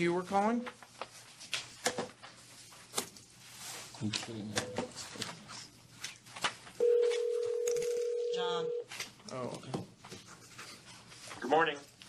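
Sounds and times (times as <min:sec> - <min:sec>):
telephone ringback tone: 0:06.8 - 0:08.9.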